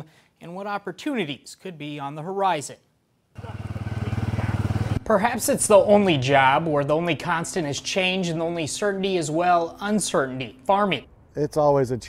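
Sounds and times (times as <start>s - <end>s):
off-road vehicle engine running: 3.4s - 5.1s.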